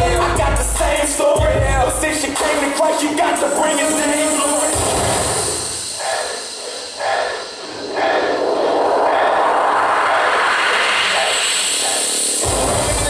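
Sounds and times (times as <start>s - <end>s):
jet-like whoosh effect: 4.7s - 13.0s.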